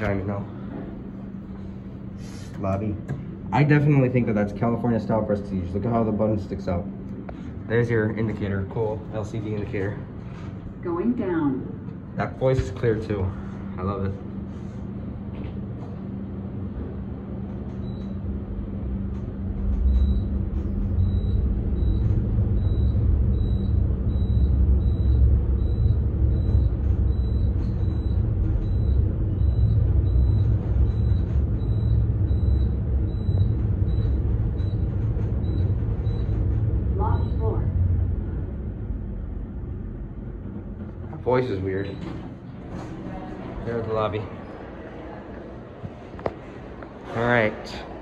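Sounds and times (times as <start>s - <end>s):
elevator ride rumble: 0.0s - 48.0s.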